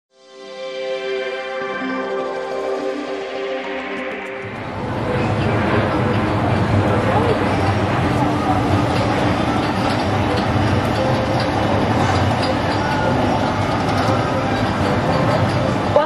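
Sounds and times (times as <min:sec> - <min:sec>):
low mechanical hum: 0:04.4 - 0:16.0.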